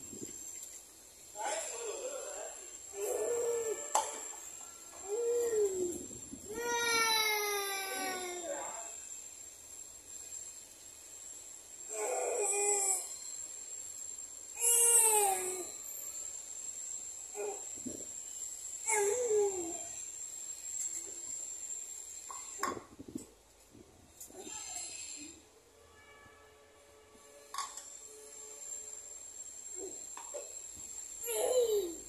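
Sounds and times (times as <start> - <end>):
toddler vocalizing: 31.2 - 32.0.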